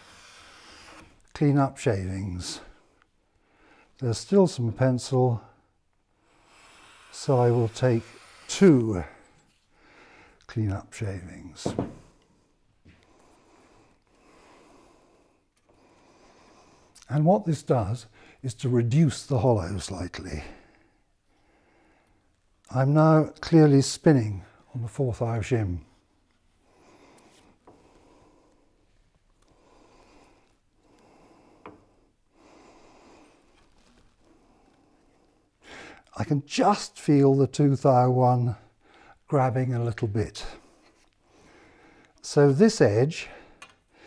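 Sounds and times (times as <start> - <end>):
soft hisses: 6.3 - 9.7
metal rubbing and sliding on paper: 6.4 - 9.6.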